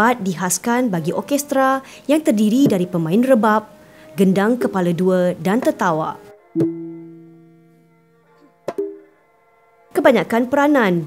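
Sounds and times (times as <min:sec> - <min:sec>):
struck gong notes ringing: 0:02.2 - 0:09.2
traditional ensemble music: 0:06.2 - 0:09.8.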